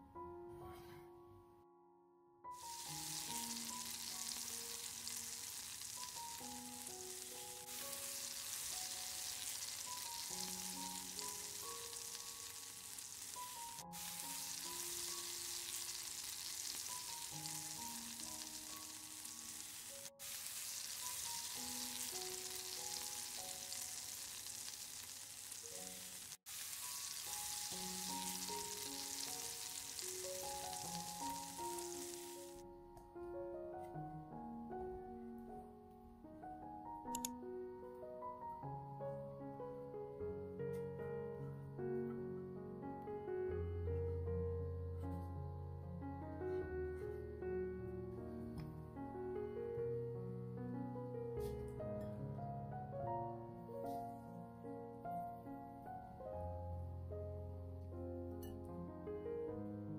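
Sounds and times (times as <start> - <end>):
vegetables sizzling in a pan: 2.6 - 32.6.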